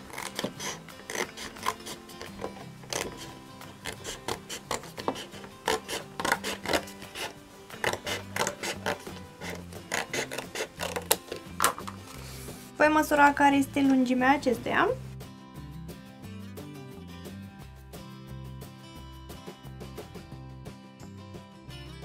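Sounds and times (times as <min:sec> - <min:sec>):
scissors cutting cardstock: 0:00.0 - 0:12.2.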